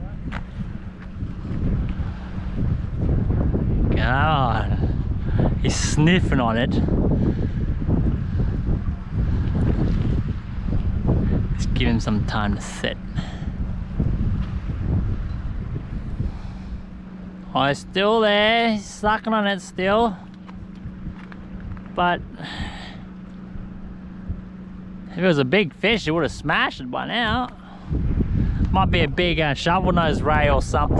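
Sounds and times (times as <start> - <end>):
faint steady hum: 0.0 - 30.9
wind buffeting microphone: 0.0 - 30.9.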